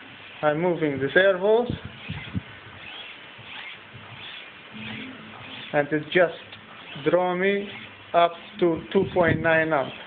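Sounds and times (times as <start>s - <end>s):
servos whirring with squeaky whines: 1.7s - 10.0s.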